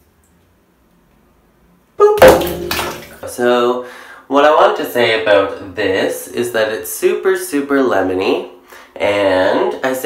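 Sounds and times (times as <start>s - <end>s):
loud splash in bathtub: 2.2s - 3.3s
water sloshing: 2.2s - 3.3s.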